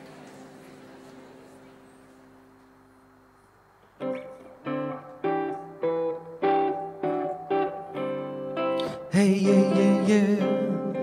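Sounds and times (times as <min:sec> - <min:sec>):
electric guitar picked chords: 0:04.0 - 0:11.0.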